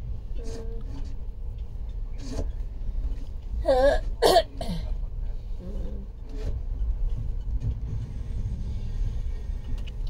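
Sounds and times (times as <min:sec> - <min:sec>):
train rumble: 0:00.0 - 0:10.0
person coughing: 0:03.7 - 0:04.9.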